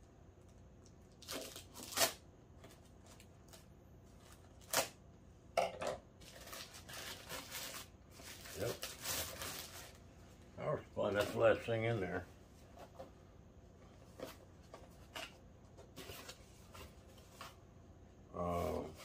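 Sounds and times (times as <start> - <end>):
plastic bag tearing and crinkling: 1.0 - 2.2, 3.0 - 5.0, 6.2 - 10.0.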